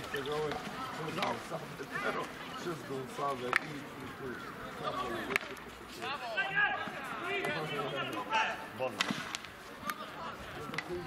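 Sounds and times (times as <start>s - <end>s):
hockey sticks clacking: 0.0s - 2.4s, 3.0s - 6.2s, 8.9s - 11.0s.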